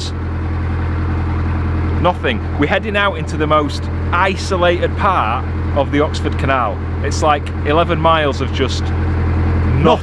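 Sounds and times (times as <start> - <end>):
boat diesel engine running: 0.0 - 10.0.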